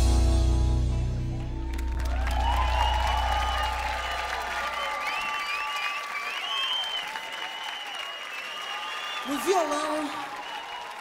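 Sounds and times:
audience applauding and cheering: 0:00.8 - 0:11.0.

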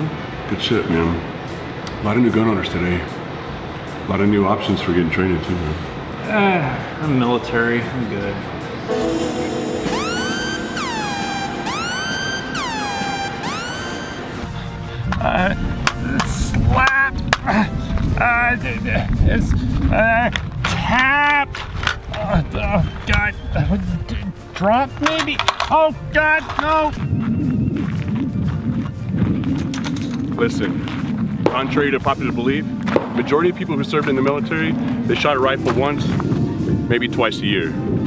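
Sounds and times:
synthesized swooping tone: 0:08.9 - 0:14.4
wind buffeting microphone: 0:14.4 - 0:25.1, 0:26.0 - 0:38.0.

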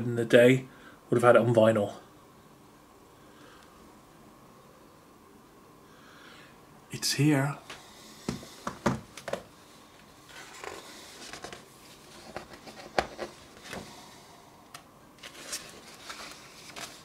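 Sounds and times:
paper rustling and sliding: 0:10.2 - 0:14.0, 0:15.2 - 0:17.0
book pages turning: 0:10.3 - 0:13.8, 0:14.7 - 0:17.0
pages tapping: 0:10.4 - 0:13.8.

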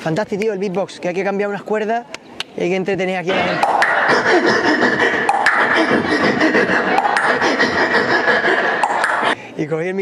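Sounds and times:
beatboxing into a microphone: 0:03.6 - 0:09.4.

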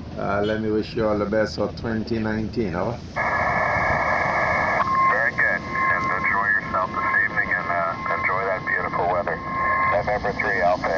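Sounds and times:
receiver hiss: 0:02.0 - 0:10.9
tinny radio voice: 0:05.0 - 0:10.9.

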